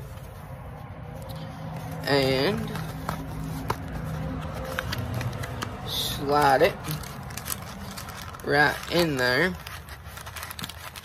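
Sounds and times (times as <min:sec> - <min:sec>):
cardboard and pouches rustling: 0:00.0 - 0:11.0.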